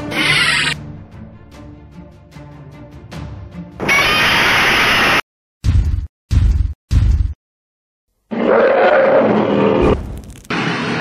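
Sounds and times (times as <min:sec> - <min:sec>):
monster roar: 0:08.3 - 0:10.0.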